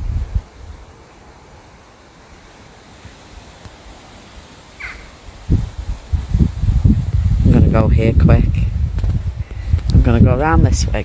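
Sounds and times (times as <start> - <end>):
outdoor hiss: 0.0 - 11.0
wind gusting against microphone: 0.0 - 11.0.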